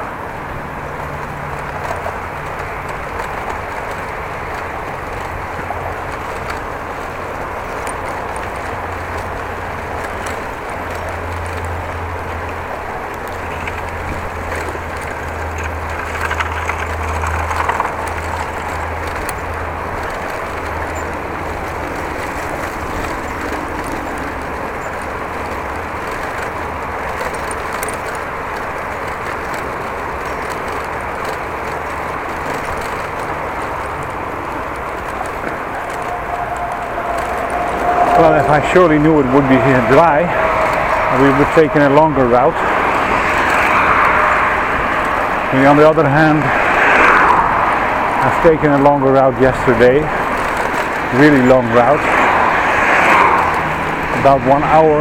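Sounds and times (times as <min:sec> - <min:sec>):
bicycle rolling on brick path: 0:00.0 - 0:55.0.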